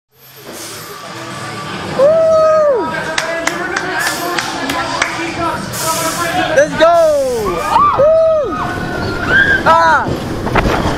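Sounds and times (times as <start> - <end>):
riders chattering: 2.9 - 7.8.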